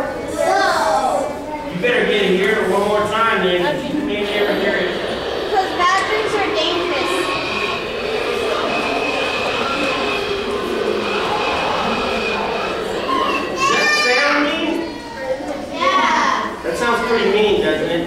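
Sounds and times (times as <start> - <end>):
high-pitched children's voices: 0.0 - 1.8, 4.5 - 17.6
children talking and calling out: 0.0 - 18.0.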